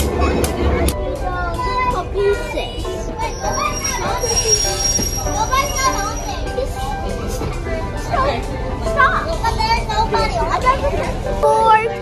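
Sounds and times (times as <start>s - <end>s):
children's voices: 0.0s - 12.0s
train coaches rumbling past: 0.0s - 12.0s
high-pitched wheel squeal: 3.2s - 6.6s.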